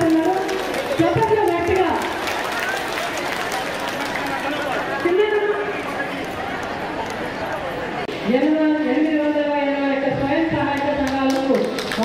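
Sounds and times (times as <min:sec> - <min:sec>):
hand clapping: 0:00.0 - 0:05.1, 0:10.8 - 0:12.0
many people talking: 0:00.0 - 0:12.0.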